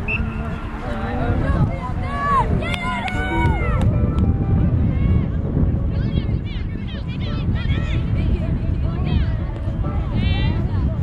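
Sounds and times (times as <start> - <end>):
women shouting and cheering: 1.1 - 4.2
sharp claps: 2.7 - 4.2.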